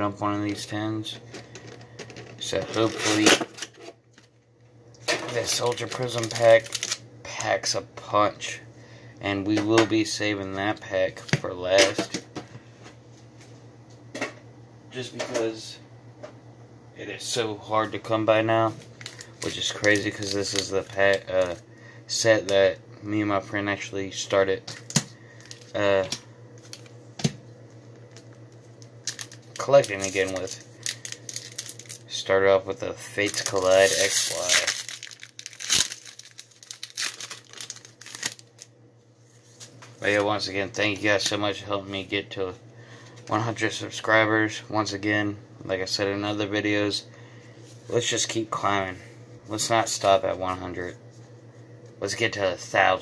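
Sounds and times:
steady low hum: 0.0s - 53.0s
foil wrapper tearing and crinkling: 5.3s - 7.0s, 19.0s - 21.5s, 29.0s - 32.0s, 33.1s - 38.7s.

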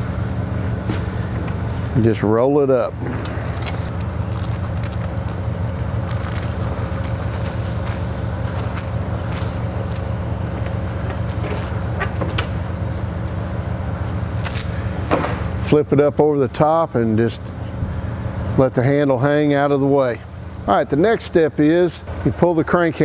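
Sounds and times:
diesel truck engine idling: 0.0s - 23.0s.

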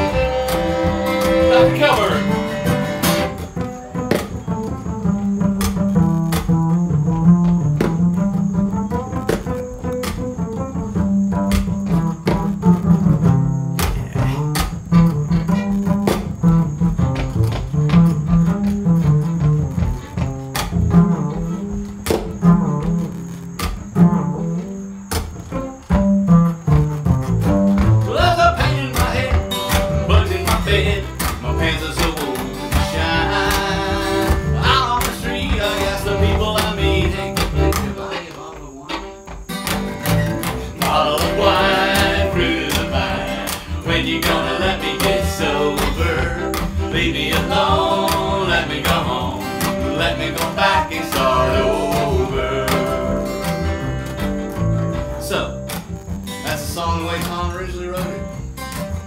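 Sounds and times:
fiddle: 0.0s - 5.0s, 24.8s - 55.2s
acoustic guitar: 0.0s - 59.0s
plucked upright bass: 0.0s - 59.0s
two people singing: 28.0s - 39.2s, 40.5s - 54.0s, 56.4s - 58.3s.

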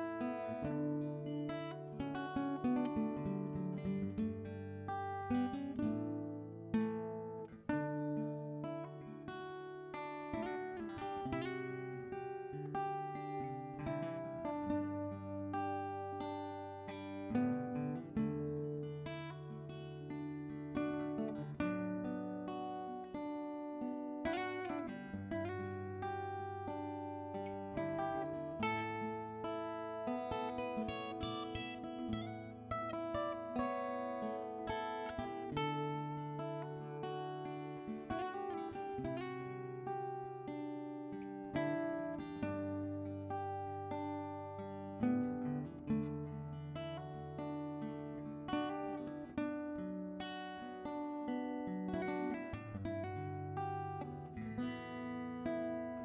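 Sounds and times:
acoustic guitar picking: 0.0s - 56.0s.

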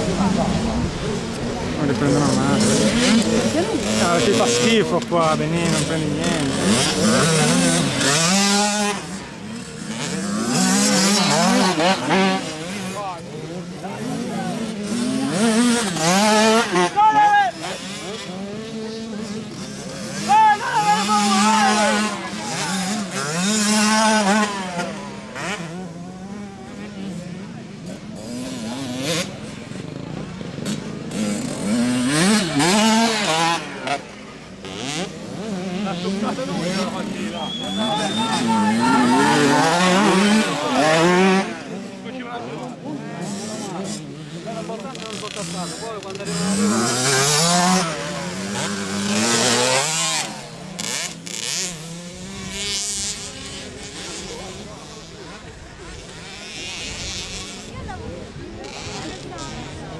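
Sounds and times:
motocross bikes revving: 0.0s - 59.9s.

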